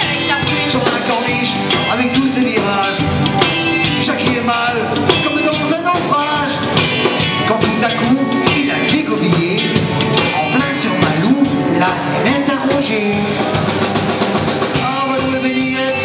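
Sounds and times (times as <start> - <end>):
bass guitar: 0.0 - 16.0
drum kit: 0.0 - 16.0
lead melody line: 0.0 - 16.0
live rock band: 0.0 - 16.0.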